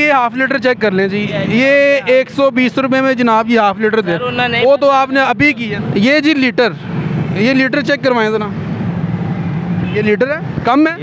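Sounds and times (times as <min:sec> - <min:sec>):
man's voice: 0:00.0 - 0:08.6.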